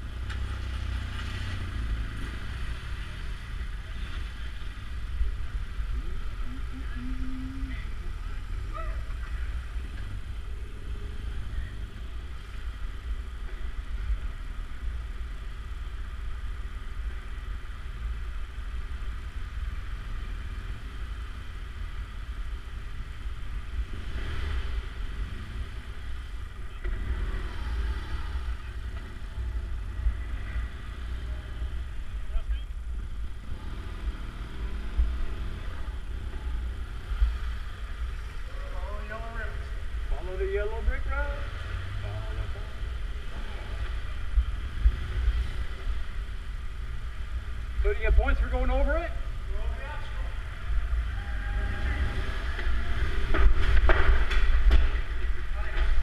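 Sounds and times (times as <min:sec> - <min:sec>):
motorcycle engine rumbling: 0:00.0 - 0:56.0
faint voices talking: 0:03.4 - 0:14.9, 0:35.0 - 0:46.5.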